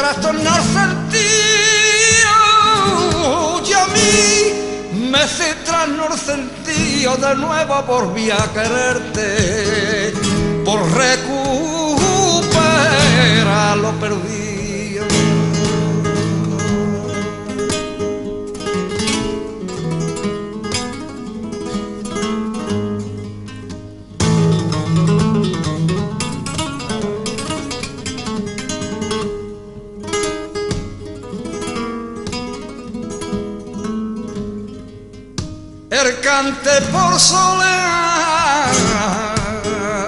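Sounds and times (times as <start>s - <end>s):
flamenco guitar solo: 0.0s - 40.0s.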